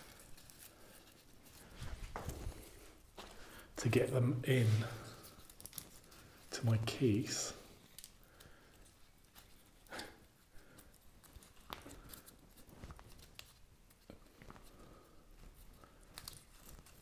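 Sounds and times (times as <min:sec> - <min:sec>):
hands rustling and crackling moss: 0:00.0 - 0:17.0.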